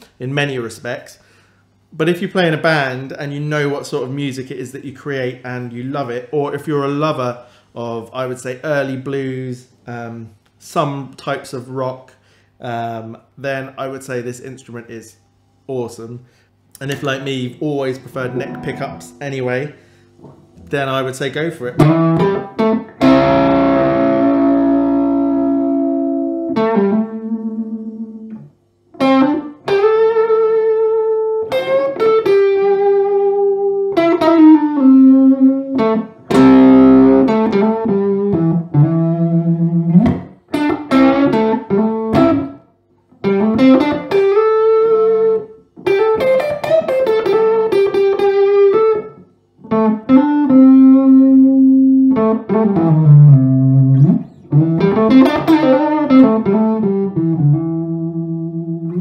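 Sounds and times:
electric guitar lead phrases: 0:17.8 - 0:59.0.

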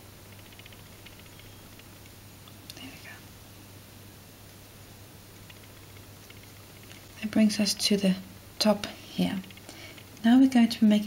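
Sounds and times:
soft whispery vocal sound: 0:02.7 - 0:03.3.

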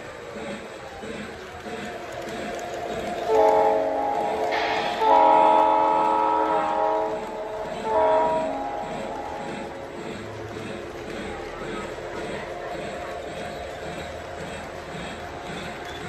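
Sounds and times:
model train rumbling on track: 0:00.0 - 0:16.0
model train horn blasts: 0:03.3 - 0:09.8.

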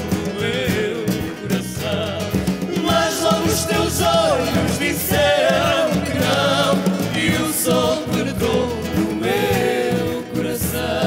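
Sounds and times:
acoustic guitar: 0:00.0 - 0:11.0
man and woman singing duet: 0:00.0 - 0:11.0.

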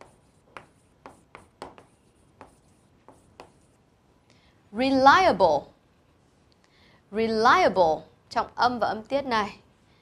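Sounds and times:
chalk tapping and scraping: 0:00.0 - 0:03.9.

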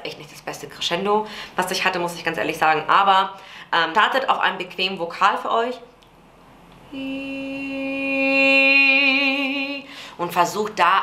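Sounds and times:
woman singing a held note: 0:06.9 - 0:09.9.

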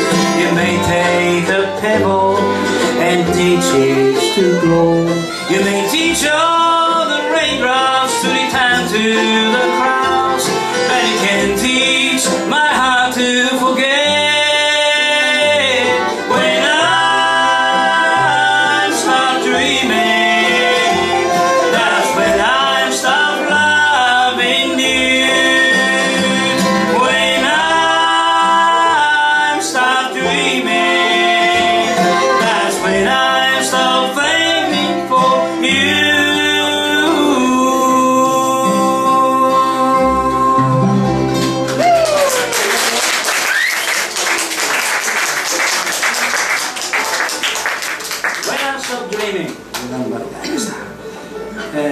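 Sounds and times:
bowed fiddle: 0:00.0 - 0:12.6, 0:13.2 - 0:41.7
banjo: 0:00.0 - 0:42.0, 0:50.4 - 0:51.9
upright bass: 0:00.0 - 0:43.0
acoustic guitar: 0:00.0 - 0:51.9.

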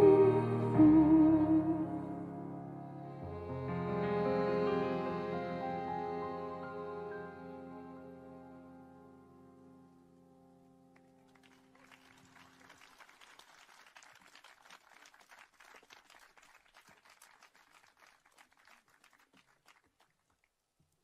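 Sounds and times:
piano and strings chord: 0:00.0 - 0:11.2
scattered clapping: 0:11.0 - 0:20.5.

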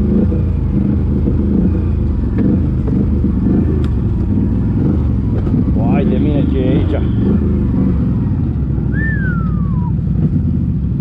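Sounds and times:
atv engine running at low revs: 0:00.0 - 0:11.0
whistle-like note sliding down: 0:08.9 - 0:10.0.

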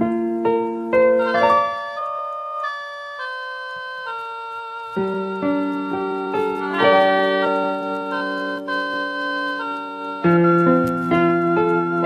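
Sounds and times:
electric piano chords: 0:00.0 - 0:12.0.

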